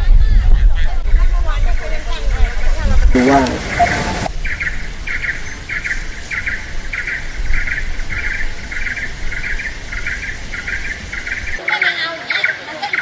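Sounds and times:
animal buzzy chirps: 3.2 - 4.3.

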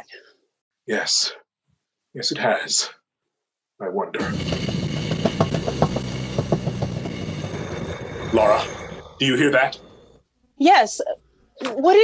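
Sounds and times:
knocks and rattles: 4.2 - 10.0
low rumble: 4.2 - 10.2.

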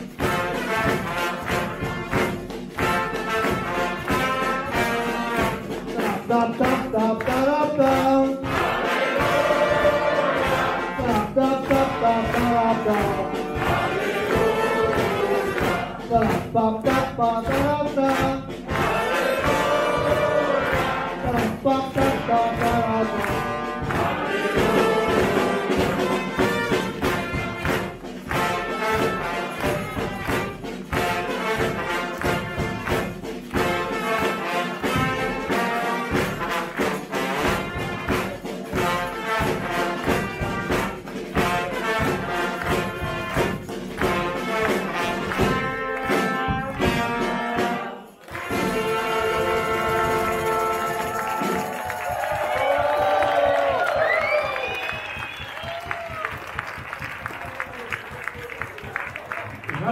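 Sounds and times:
bass drum and snare beat: 0.0 - 58.4
brass band playing: 0.0 - 59.9.

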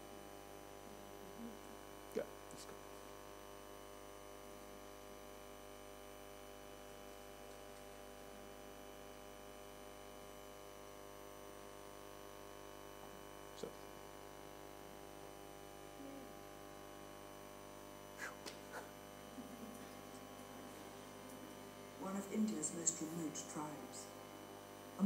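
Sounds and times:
electrical mains hum: 0.0 - 25.0.

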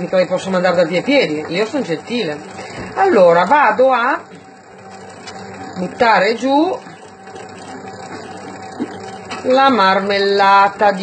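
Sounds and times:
dough mixer motor humming: 0.0 - 11.0.

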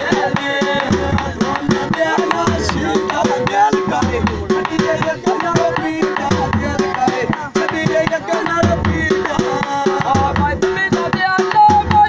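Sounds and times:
barrel drum beating: 0.0 - 12.0
person singing folk melody: 0.0 - 12.0.

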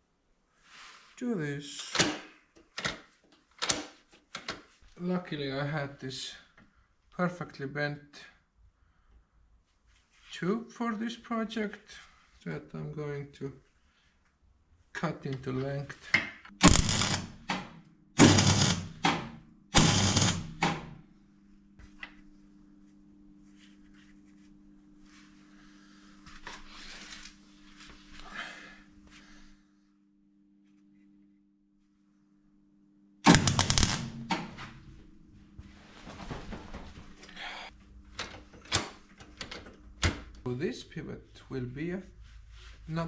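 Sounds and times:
faint steady hum: 11.2 - 43.0
welding arc crackle: 16.6 - 17.6, 18.2 - 19.0, 19.8 - 20.6, 33.3 - 34.9.

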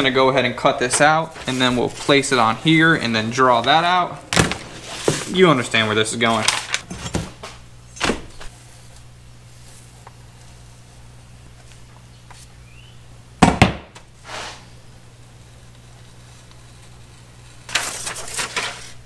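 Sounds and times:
low steady hum: 0.0 - 19.0
paper rustling: 0.9 - 3.7, 4.4 - 7.6, 17.6 - 19.0
sharp knock on workbench: 13.4 - 13.9.

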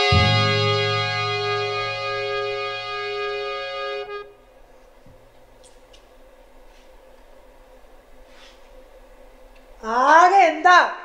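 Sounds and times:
sustained keyboard chord: 0.0 - 4.5.

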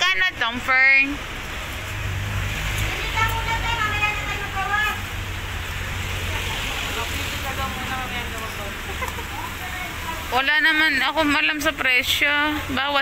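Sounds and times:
crowd hum and hiss: 1.3 - 13.0.

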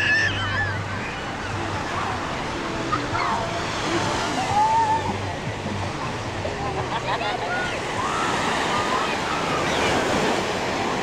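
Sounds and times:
surf washing onto beach: 0.0 - 11.0.

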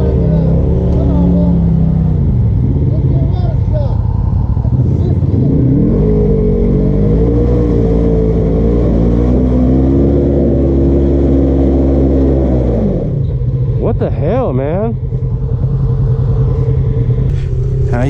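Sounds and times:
off-road vehicle engine revving: 0.0 - 18.0.

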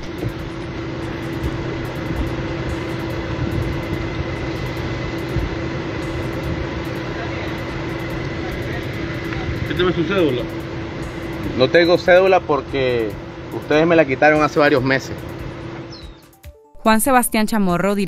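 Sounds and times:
faint whine: 0.0 - 16.0
vehicle engine idling: 0.0 - 16.4.

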